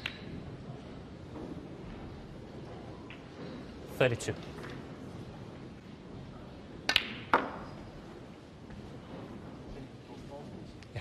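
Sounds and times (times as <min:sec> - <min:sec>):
hushed arena murmur: 0:00.0 - 0:11.0
snooker balls clicking: 0:06.8 - 0:07.8.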